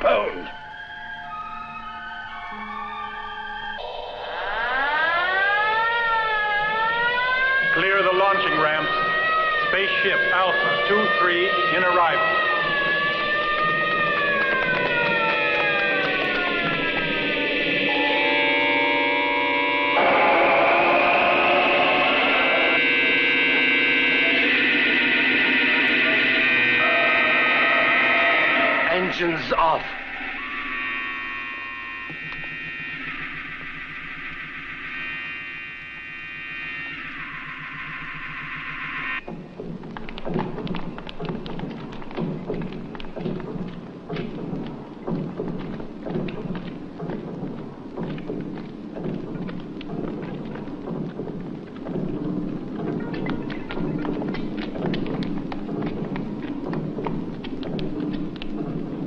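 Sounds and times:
sustained electronic tones: 0:00.0 - 0:59.0
rough crackling rumble: 0:06.1 - 0:35.2, 0:39.2 - 0:59.0
sharp electronic burst: 0:07.6 - 0:39.3.

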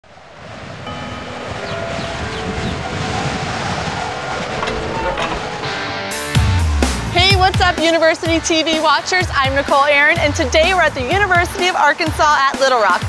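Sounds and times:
rushing noise: 0:00.0 - 0:08.1
held musical tones: 0:00.9 - 0:08.1.

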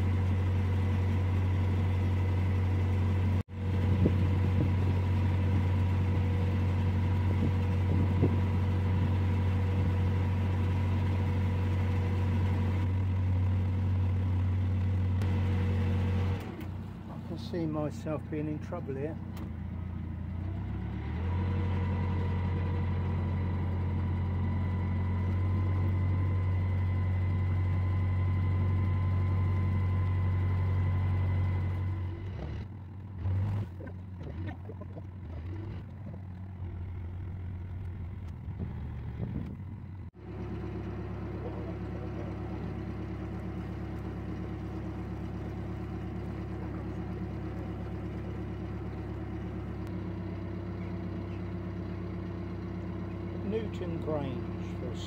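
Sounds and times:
boat diesel engine running: 0:00.0 - 0:55.0.

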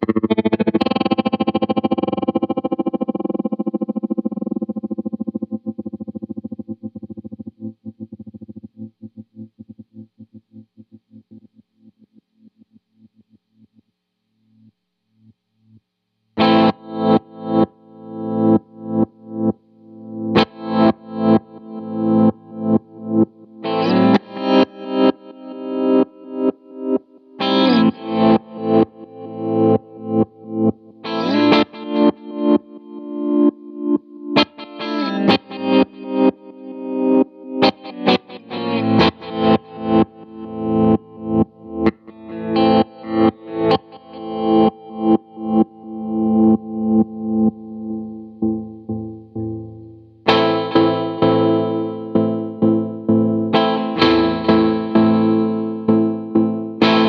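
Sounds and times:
distorted guitar chords pulsing: 0:00.0 - 0:13.4, 0:16.4 - 0:57.0.

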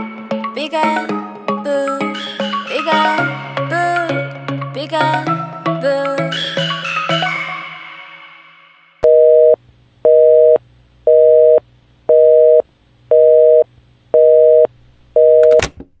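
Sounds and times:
song: 0:00.0 - 0:09.0
telephone busy signal beeps: 0:09.0 - 0:13.6, 0:14.2 - 0:15.6.

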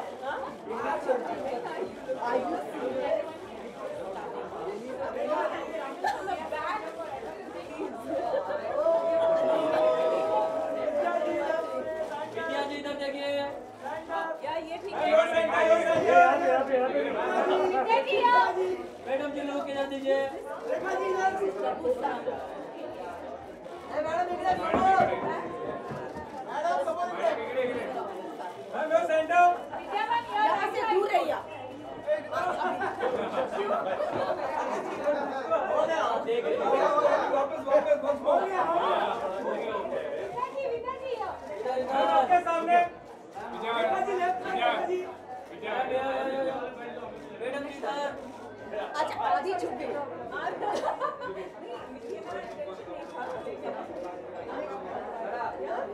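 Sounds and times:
crowd chatter: 0:00.0 - 0:55.9.

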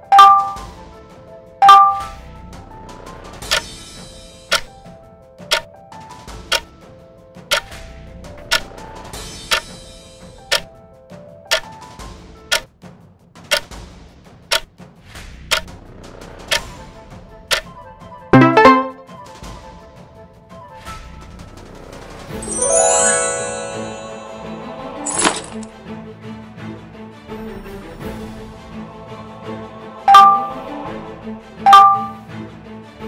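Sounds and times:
soft background music: 0:18.4 - 0:19.1, 0:22.3 - 0:26.7
clock ticking: 0:31.7 - 0:32.2.

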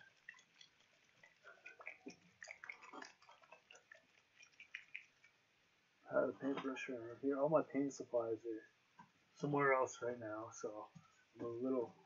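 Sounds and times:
liquid sloshing in bottle: 0:00.0 - 0:05.3.

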